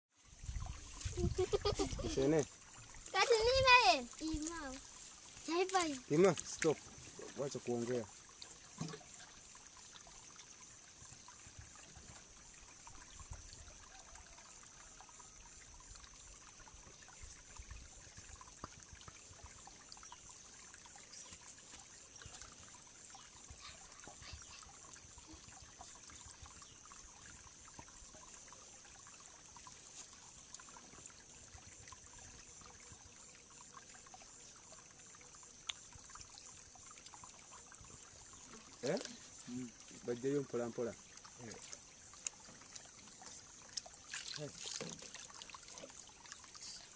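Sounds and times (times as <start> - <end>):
water gurgling into a container: 0.2 - 46.9.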